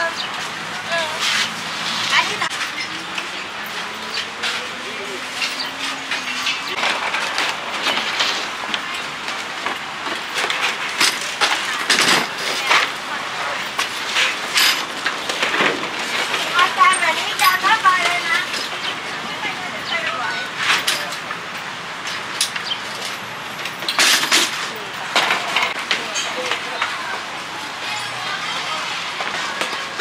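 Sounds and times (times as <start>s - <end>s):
metal table legs clattering: 5.4s - 12.9s, 22.0s - 26.9s.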